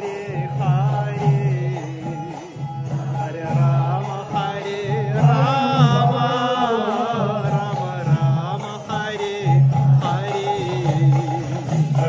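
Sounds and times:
sustained instrumental accompaniment: 0.0 - 12.0.

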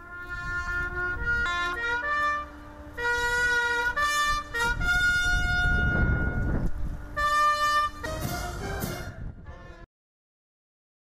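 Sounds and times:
brass band sustained chords: 0.0 - 9.8.

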